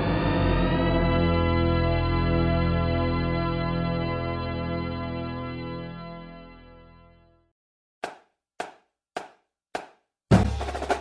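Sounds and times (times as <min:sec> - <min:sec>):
sharp percussive knocks: 0:08.0 - 0:11.0.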